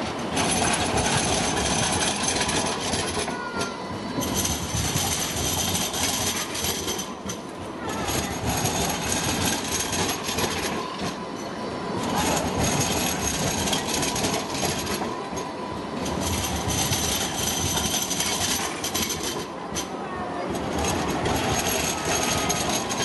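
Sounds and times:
tram wheels rolling on rails: 0.0 - 23.0.

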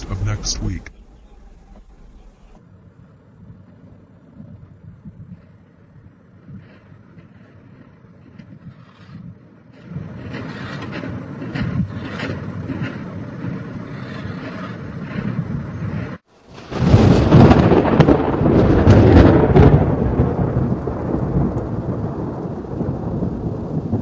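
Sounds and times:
low outdoor rumble: 0.0 - 24.0
wind on microphone: 0.0 - 24.0.

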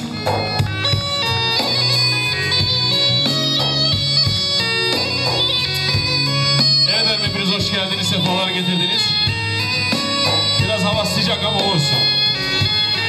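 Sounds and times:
fast reedy folk melody: 0.0 - 13.0.

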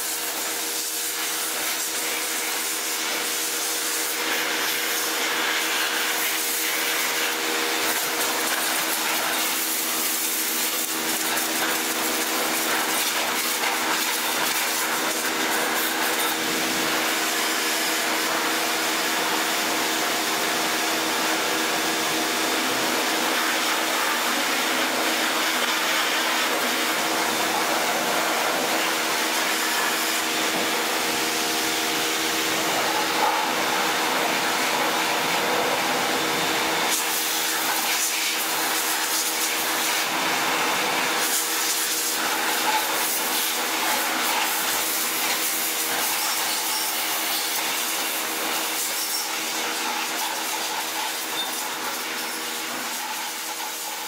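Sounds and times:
pressure washer motor humming: 0.0 - 54.0
water jet hissing: 0.0 - 54.0.

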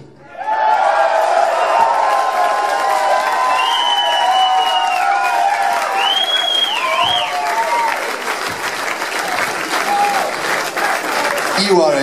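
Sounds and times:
high cries from audience: 0.2 - 8.3
crowd applauding: 0.4 - 12.0.

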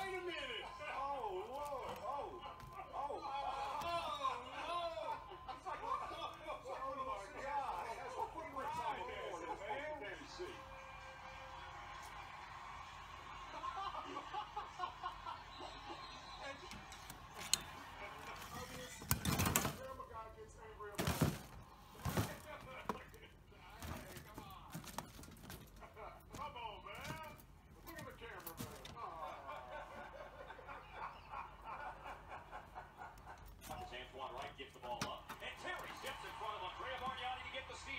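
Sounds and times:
television commentary: 0.0 - 37.9.

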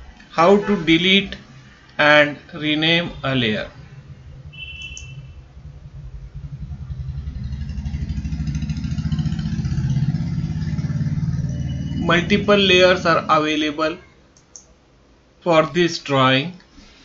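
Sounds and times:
low pulsing engine rumble: 3.2 - 13.7
faint high beep: 4.5 - 5.4, 11.5 - 12.5.

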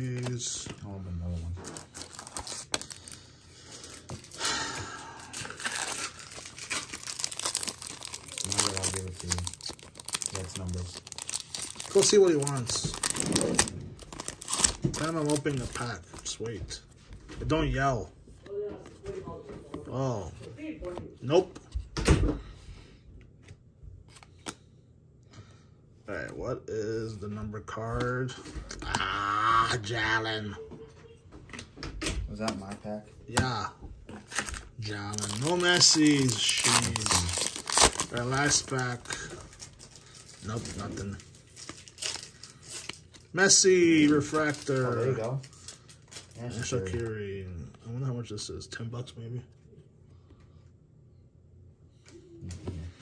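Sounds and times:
trading cards shuffling: 1.6 - 4.4, 34.1 - 43.2
foil wrapper crinkling and tearing: 1.6 - 16.4, 34.3 - 46.8.

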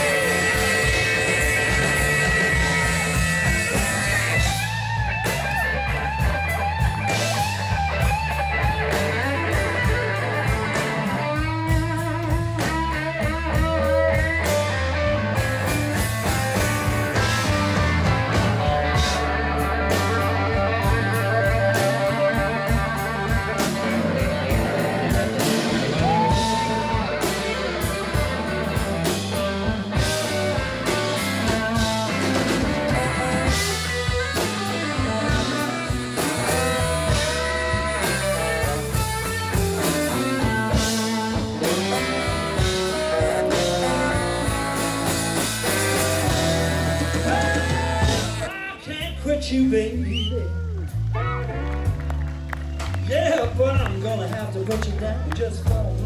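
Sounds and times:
saxophone: 0.0 - 48.9
bass: 0.0 - 56.0
electric guitar: 0.0 - 56.0.

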